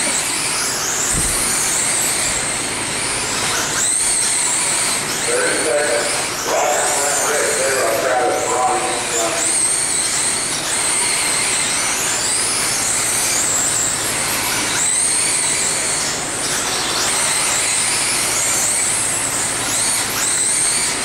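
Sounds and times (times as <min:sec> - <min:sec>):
electric motor whining: 0:00.0 - 0:21.0.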